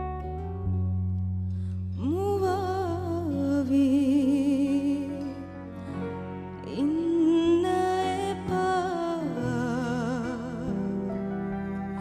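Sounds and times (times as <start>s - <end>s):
instrumental accompaniment: 0.0s - 12.0s
woman singing: 1.9s - 12.0s.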